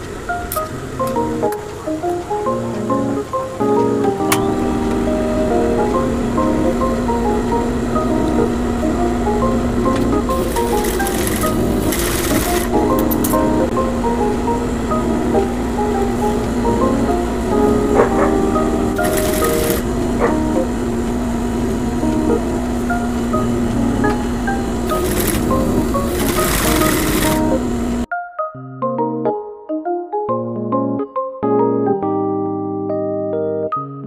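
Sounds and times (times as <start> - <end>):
steady low tone: 0.0 - 28.1
melody of short stepping notes: 0.0 - 34.0.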